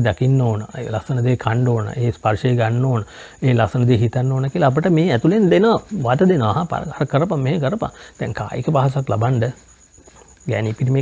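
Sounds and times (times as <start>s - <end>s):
man speaking: 0.0s - 9.6s, 10.4s - 11.0s.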